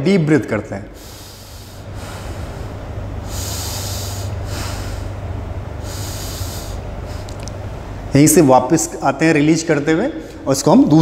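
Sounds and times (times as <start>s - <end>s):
steady low hum: 0.0s - 11.0s
man breathing deeply: 0.9s - 8.1s.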